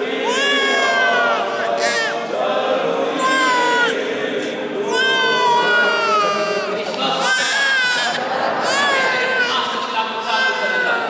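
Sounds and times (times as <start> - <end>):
infant crying: 0.2 - 2.3, 3.2 - 4.0, 4.9 - 11.0.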